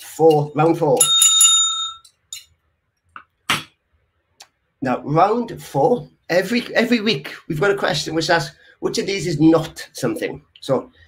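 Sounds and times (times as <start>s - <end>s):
bright bell ding: 1.0s - 2.2s.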